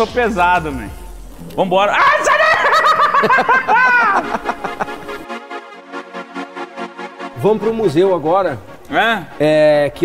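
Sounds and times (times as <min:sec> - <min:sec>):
person laughing loudly: 0:02.0 - 0:05.2.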